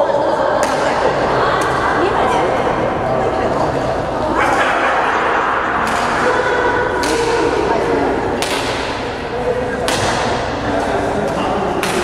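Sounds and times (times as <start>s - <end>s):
rackets hitting shuttlecock: 6.9s - 7.6s, 8.4s - 12.0s.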